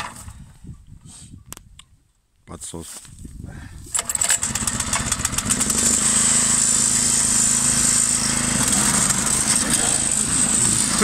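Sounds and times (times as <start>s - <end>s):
small petrol engine starting and running: 3.9s - 11.0s.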